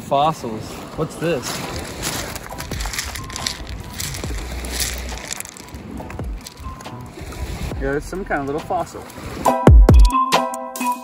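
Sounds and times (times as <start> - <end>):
gravel crunching and clattering: 1.4 - 7.1
wind on microphone: 1.4 - 8.1.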